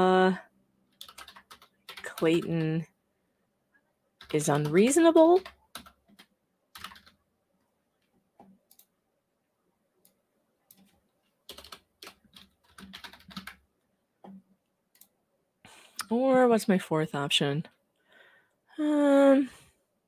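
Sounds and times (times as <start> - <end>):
faint keyboard typing: 0.8 - 2.9, 4.2 - 9.0, 10.0 - 15.2.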